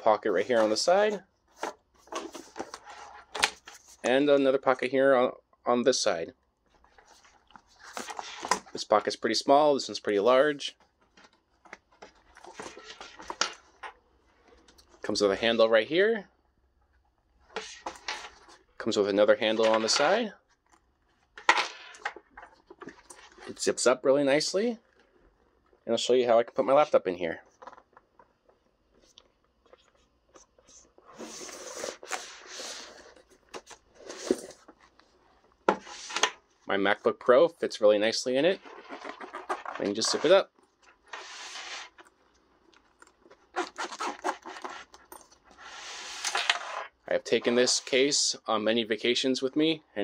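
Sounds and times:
zipper on fabric case: 0:43.5 - 0:44.9.

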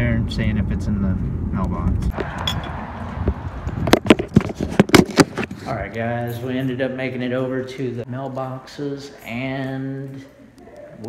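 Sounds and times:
phone handling rustling: 0:03.9 - 0:05.7.

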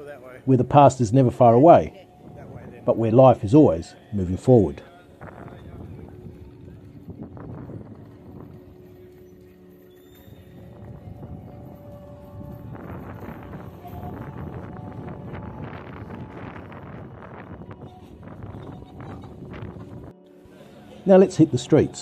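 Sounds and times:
city street ambience: 0:00.0 - 0:22.0.

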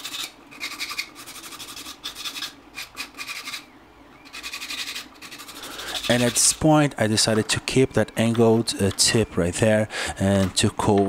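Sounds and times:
sanding stick rasping on plastic: 0:00.0 - 0:06.6.

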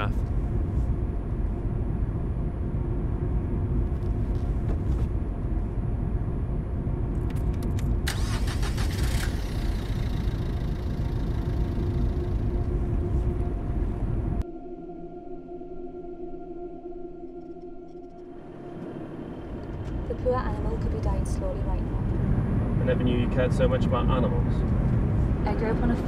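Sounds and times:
car engine and road rumble: 0:00.0 - 0:14.4, 0:18.3 - 0:26.0.

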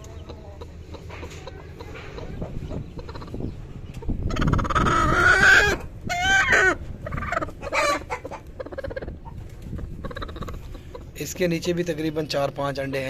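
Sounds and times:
chickens calling: 0:00.0 - 0:13.0.

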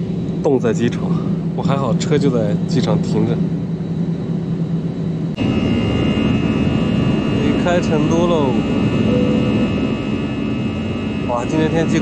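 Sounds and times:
engine high whine: 0:00.0 - 0:12.0
jet engine hum in cabin: 0:00.0 - 0:12.0.

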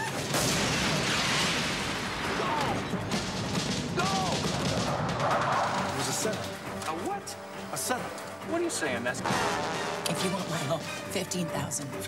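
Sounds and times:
music: 0:02.3 - 0:12.0
loud rushing roar: 0:09.2 - 0:10.5.

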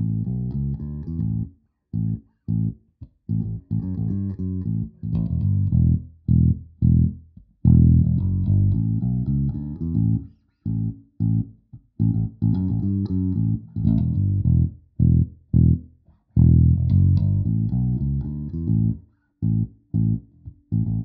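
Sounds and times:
electric bass riff: 0:00.0 - 0:21.0.

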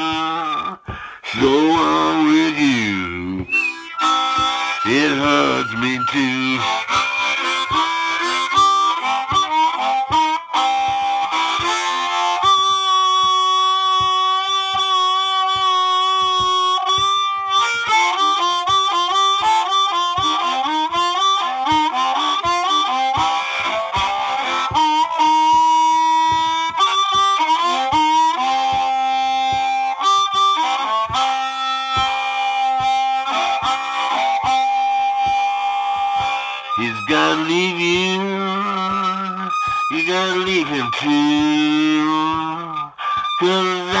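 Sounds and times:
blues harmonica: 0:00.0 - 0:44.0
soft low beat: 0:00.0 - 0:44.0.

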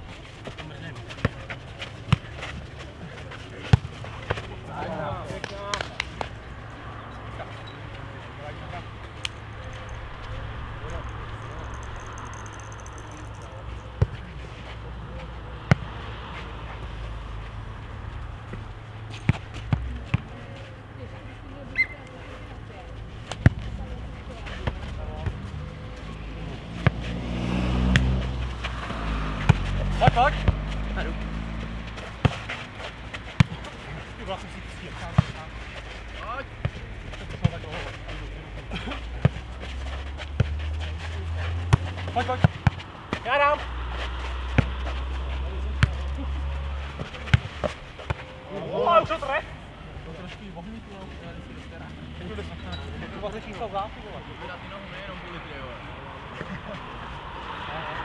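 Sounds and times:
ball bouncing on clay court: 0:00.5 - 0:04.6, 0:11.4 - 0:14.3, 0:18.5 - 0:20.6, 0:26.8 - 0:27.2, 0:27.9 - 0:31.0, 0:31.9 - 0:33.8, 0:39.2 - 0:43.3, 0:44.2 - 0:46.3, 0:46.9 - 0:48.3
players shouting: 0:45.9 - 0:49.8.

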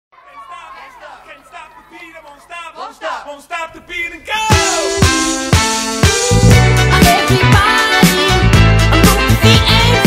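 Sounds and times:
murmur of voices: 0:00.2 - 0:05.0.

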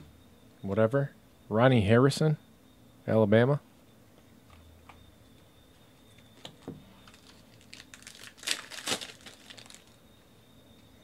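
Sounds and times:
foil wrapper crinkling and tearing: 0:07.0 - 0:10.0.

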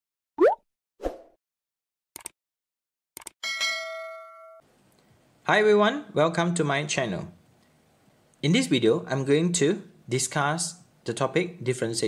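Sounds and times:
rising cartoon bloop: 0:00.4 - 0:00.6.

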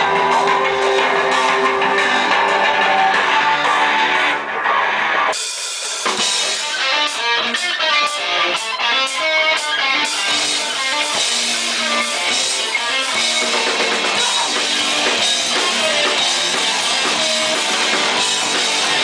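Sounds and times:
drum kit beat: 0:00.0 - 0:04.6, 0:05.2 - 0:19.0
bass guitar: 0:00.0 - 0:19.0
electric guitars: 0:00.0 - 0:19.0.

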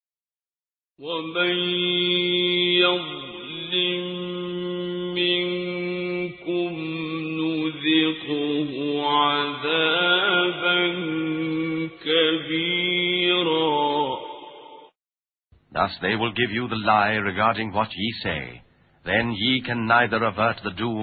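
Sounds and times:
man chanting melodic recitation: 0:01.0 - 0:14.5, 0:15.7 - 0:21.0.

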